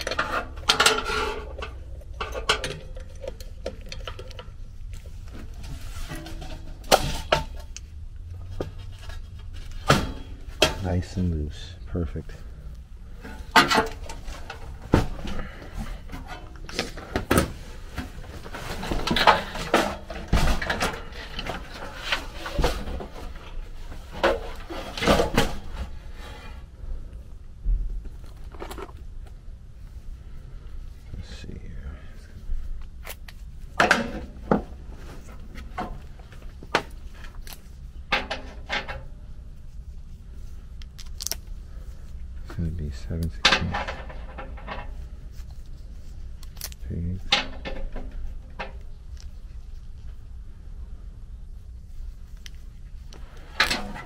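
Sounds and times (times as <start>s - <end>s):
sheet metal clanks and rattles: 0.0s - 4.6s, 5.5s - 7.8s, 8.6s - 11.2s, 13.1s - 25.9s, 33.8s - 34.8s, 42.9s - 45.1s, 47.2s - 48.8s, 53.4s - 54.0s.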